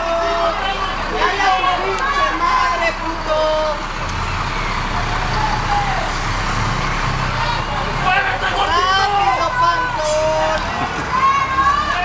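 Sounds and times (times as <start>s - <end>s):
distant voices: 0.0s - 12.0s
fire engine engine rumble: 0.0s - 12.0s
loud street noise: 0.0s - 12.0s.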